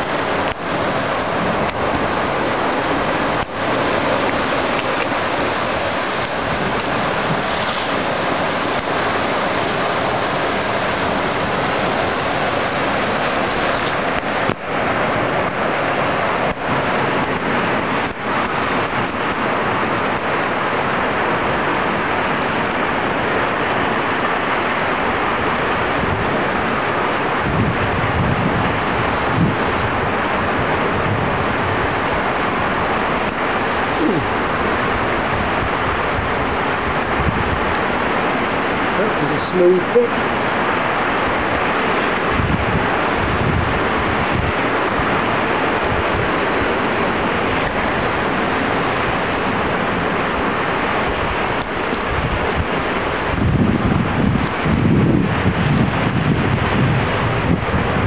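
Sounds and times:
sea surf breaking on rocks: 0.0s - 58.0s
wind: 0.0s - 58.0s
wind buffeting microphone: 0.0s - 58.0s.

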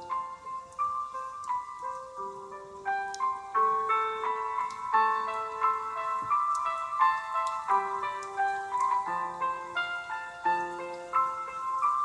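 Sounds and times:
slow keyboard melody: 0.0s - 12.0s.

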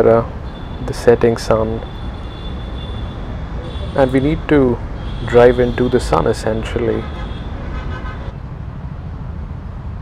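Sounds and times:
highway traffic rumble: 0.0s - 10.0s.

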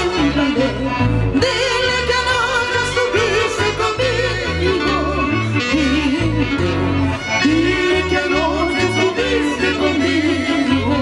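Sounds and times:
keyboard: 0.0s - 11.0s
violin: 0.0s - 11.0s
woman singing with vibrato: 0.0s - 11.0s.

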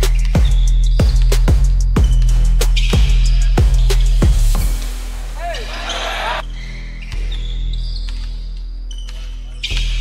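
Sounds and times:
music with deep bass line: 0.0s - 5.4s
players' voices: 5.4s - 6.4s.

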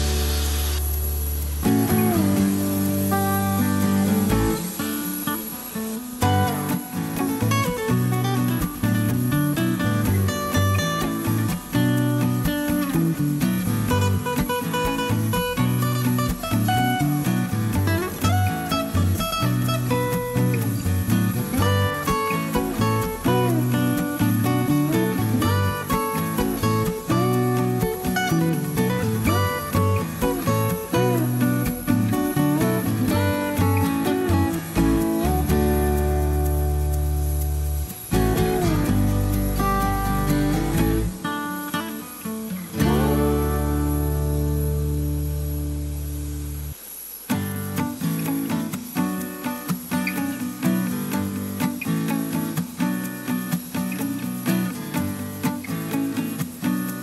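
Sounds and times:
guitar background music: 0.0s - 57.0s.

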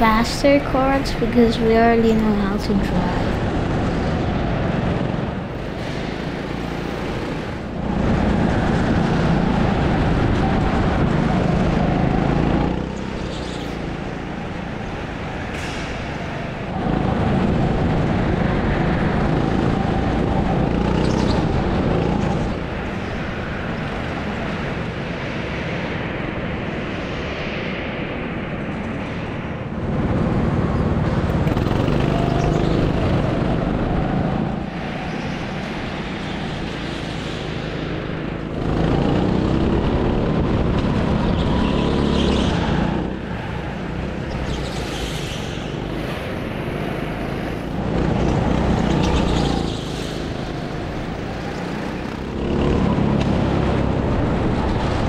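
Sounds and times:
go-kart motor: 3.2s - 23.0s, 30.5s - 35.1s, 36.0s - 55.0s.

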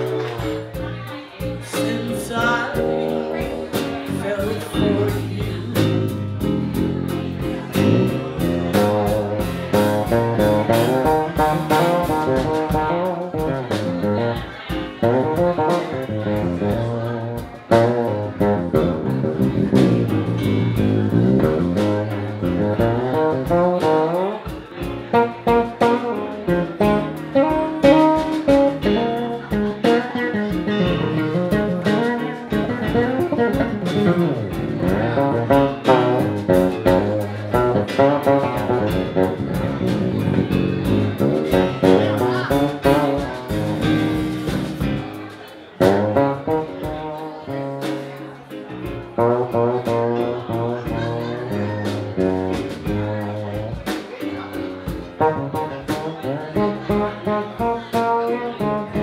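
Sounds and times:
live band playing: 0.0s - 59.0s.

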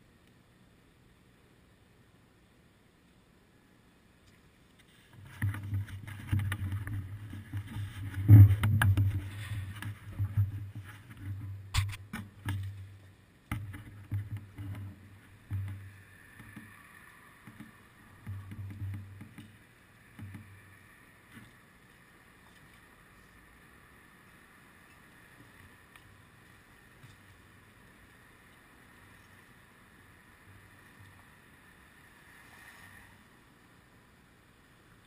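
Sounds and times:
muffled bumps and rumbling: 5.2s - 16.8s.

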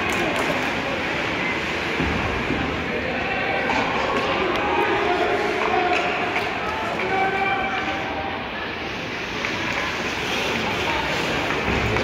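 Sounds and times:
arena noise: 0.0s - 12.0s
skates on ice: 9.1s - 12.0s.

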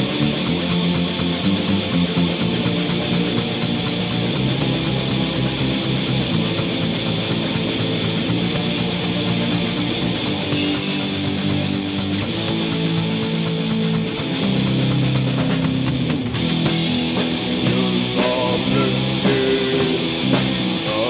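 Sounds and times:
distorted electric guitar chords: 0.0s - 21.0s
fast drumming: 0.0s - 21.0s.

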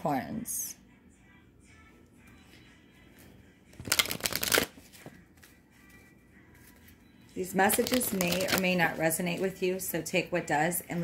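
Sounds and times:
cards being shuffled: 3.7s - 5.6s, 7.7s - 8.8s.

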